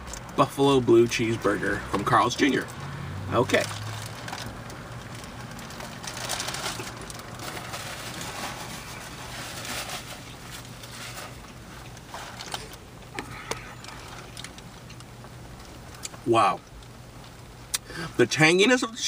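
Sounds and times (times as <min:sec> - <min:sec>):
low steady hum: 0:00.0 - 0:19.0
paper wrapper rustling: 0:03.6 - 0:14.6.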